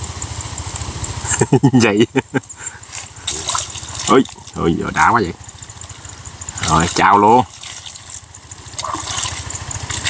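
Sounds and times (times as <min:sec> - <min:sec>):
small engine running: 0:00.0 - 0:10.0
water sloshing and splashing: 0:02.6 - 0:10.0.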